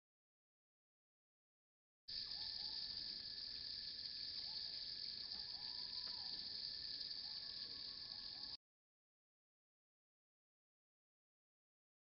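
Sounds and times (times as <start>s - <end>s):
high-pitched insect chorus: 2.1s - 8.6s.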